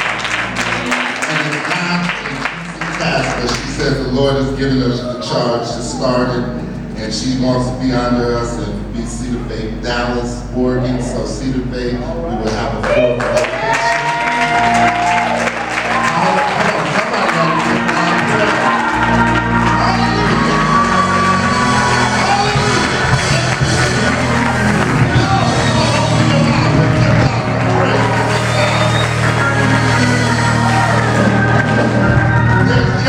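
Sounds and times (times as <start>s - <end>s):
bass line: 0.0s - 33.0s
congregation voices: 0.0s - 33.0s
live church praise music: 0.0s - 33.0s.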